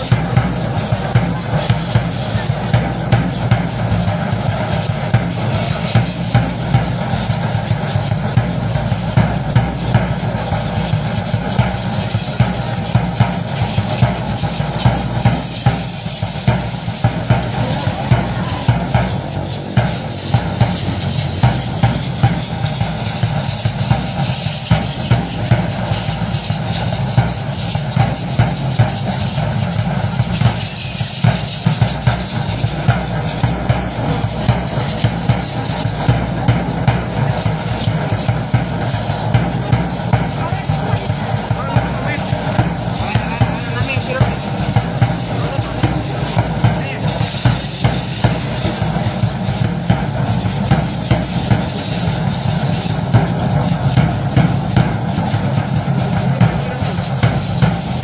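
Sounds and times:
drum beating dance rhythm: 0:00.0 - 0:58.0.

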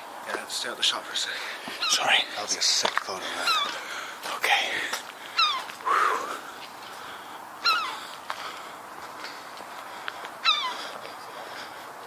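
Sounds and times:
animal cries falling in pitch: 0:05.4 - 0:05.7, 0:07.6 - 0:08.0, 0:10.4 - 0:10.8.

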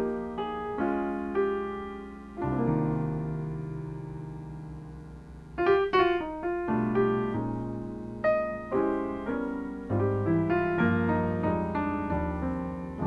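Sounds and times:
jazz piano: 0:00.0 - 0:13.0.

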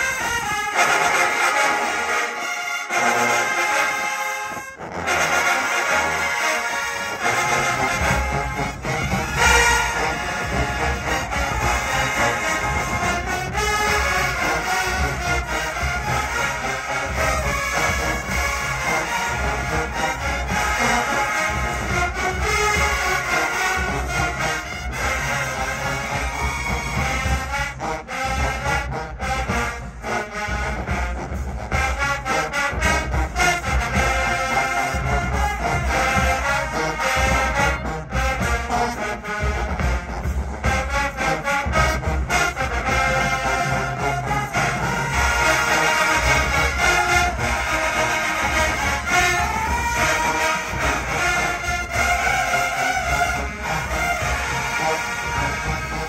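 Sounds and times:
marching band playing brass: 0:00.0 - 0:56.0.

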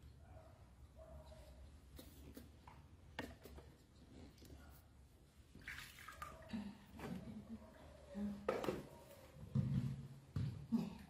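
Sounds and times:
water sloshing in plastic basin: 0:05.5 - 0:07.4.

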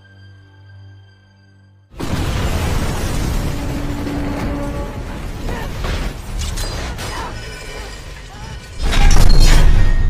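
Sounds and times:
metallic clanks and debris crashes: 0:02.0 - 0:10.0.

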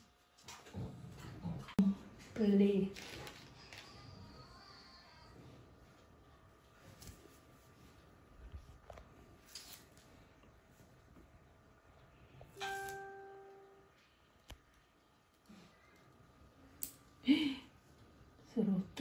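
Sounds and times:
chime-like ding: 0:12.6 - 0:13.8.

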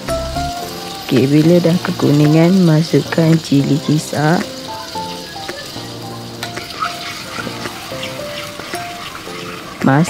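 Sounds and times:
oil sizzling in a wok: 0:00.0 - 0:10.0
soft background music: 0:00.0 - 0:10.0
metal spatula scraping: 0:06.4 - 0:09.8.

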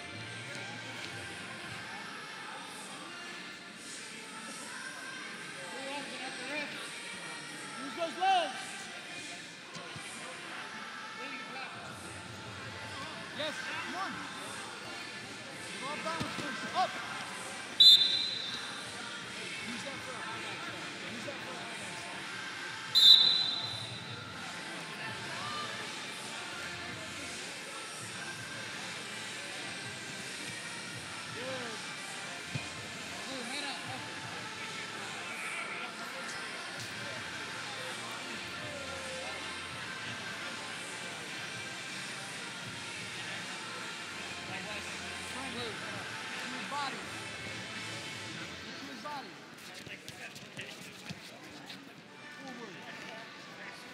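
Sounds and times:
referee whistle blasts: 0:17.8 - 0:18.7, 0:23.0 - 0:24.0.

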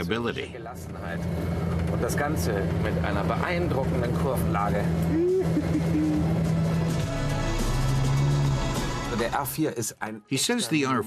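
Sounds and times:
car engine droning: 0:00.0 - 0:09.5.

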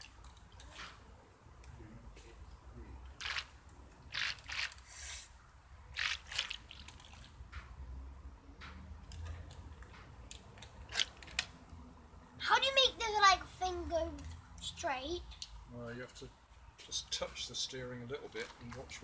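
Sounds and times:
child speaking: 0:12.4 - 0:15.4.

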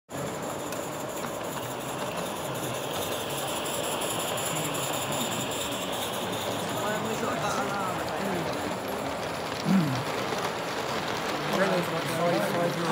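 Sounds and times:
model steam locomotive hissing: 0:00.1 - 0:12.9
background voices talking: 0:00.2 - 0:12.9.

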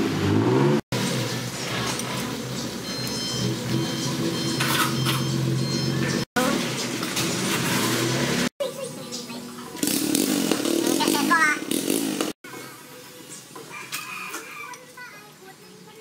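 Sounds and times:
workshop ambience: 0:00.0 - 0:16.0.

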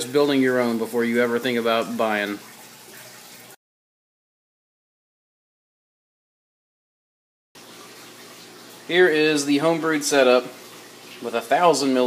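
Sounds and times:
man speaking: 0:00.0 - 0:02.5, 0:08.9 - 0:10.5, 0:11.2 - 0:12.0.

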